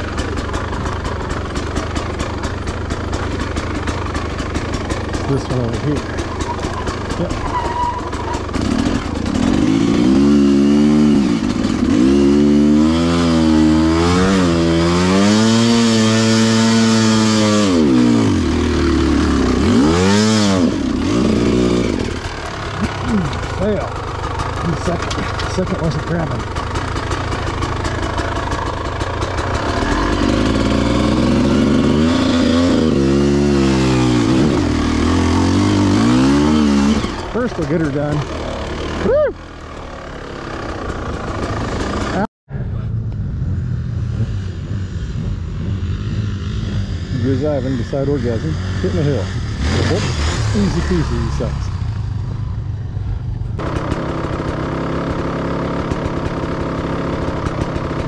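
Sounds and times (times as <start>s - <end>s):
dirt bike engine revving: 0.0s - 42.3s, 43.3s - 53.0s, 53.6s - 58.0s.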